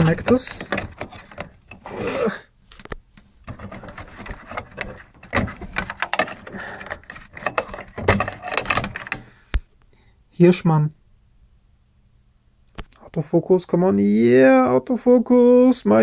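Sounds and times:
hands rattling cable connectors: 0:00.0 - 0:01.9, 0:02.7 - 0:09.4.

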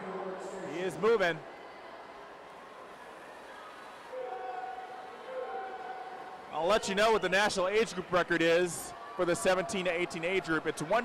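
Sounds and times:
crowd noise echoing indoors: 0:00.0 - 0:11.0.

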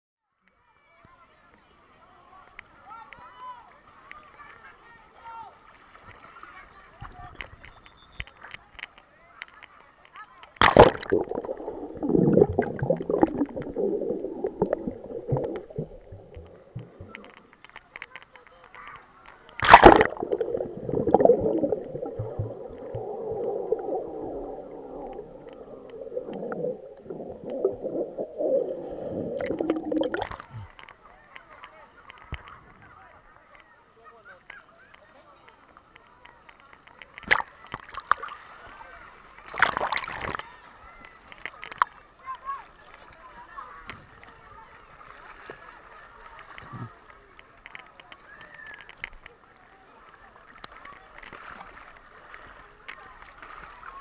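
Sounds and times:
faint underwater clicks: 0:02.4 - 0:04.8, 0:05.5 - 0:54.0
muffled underwater gurgle: 0:10.6 - 0:18.0, 0:19.6 - 0:30.9
water sloshing and splashing: 0:10.6 - 0:18.2, 0:19.5 - 0:30.9
sharp clicks: 0:19.5 - 0:28.0.

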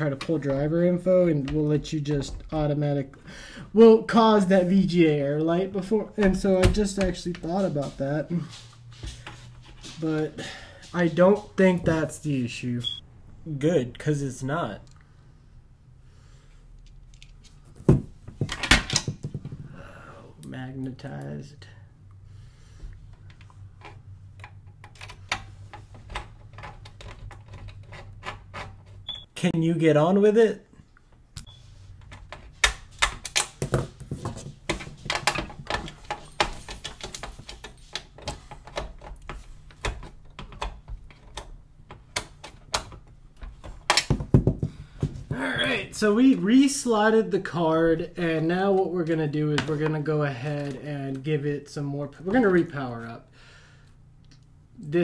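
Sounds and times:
clicks and clatter inside computer case: 0:32.0 - 0:45.2.

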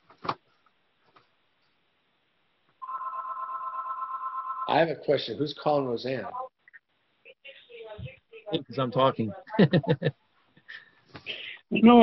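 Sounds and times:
steady two-pitch telephone tone: 0:02.8 - 0:04.7.

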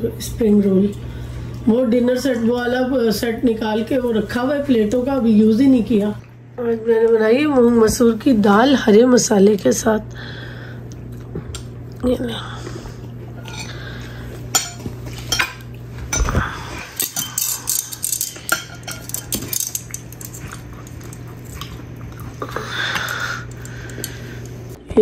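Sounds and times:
steady low hum: 0:00.0 - 0:25.0
metal utensils clinking on ceramic plates: 0:13.4 - 0:13.8, 0:14.5 - 0:16.3, 0:17.0 - 0:21.2.

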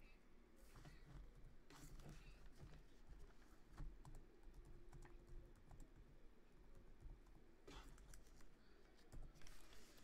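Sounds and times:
typing on laptop keyboard: 0:03.8 - 0:06.1.

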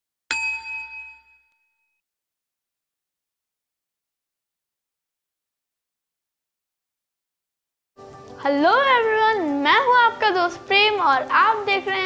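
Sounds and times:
bell-like ding: 0:00.3 - 0:02.0.

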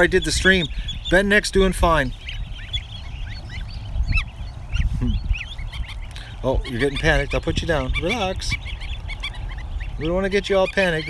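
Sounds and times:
ducklings and goslings peeping: 0:00.0 - 0:11.0
loud falling gosling call: 0:02.2 - 0:11.0.

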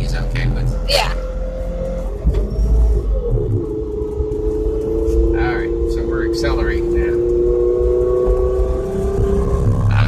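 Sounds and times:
low road rumble: 0:00.0 - 0:10.0.

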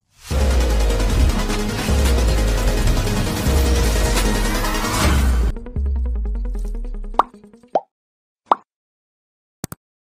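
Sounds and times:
cartoon pop sound effects: 0:07.2 - 0:07.9, 0:08.5 - 0:08.7.

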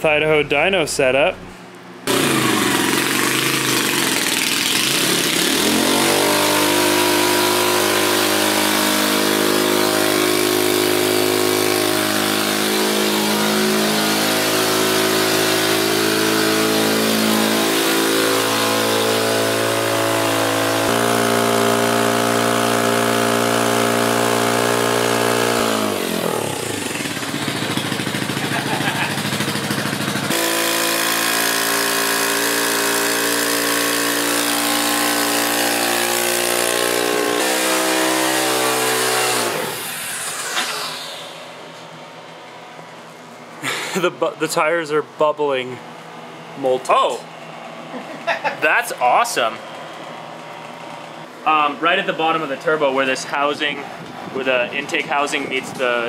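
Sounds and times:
small dirt bike engine revving: 0:02.1 - 0:41.8, 0:43.6 - 0:44.0.

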